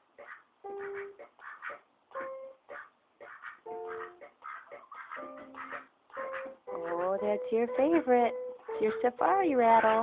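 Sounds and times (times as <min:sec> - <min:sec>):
electronic toy plucked tune: 0:07.2 - 0:10.0.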